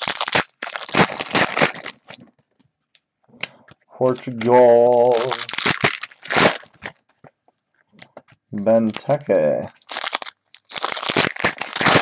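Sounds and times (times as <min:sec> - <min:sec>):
foil wrapper crinkling and tearing: 0:00.0 - 0:02.2, 0:04.1 - 0:07.1, 0:08.7 - 0:12.0.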